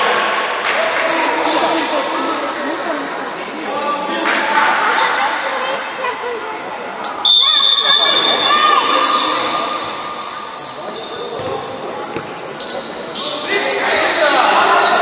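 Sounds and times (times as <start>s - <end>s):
players' voices echoing: 0.0s - 15.0s
ball kicks and bounces: 11.4s - 12.4s.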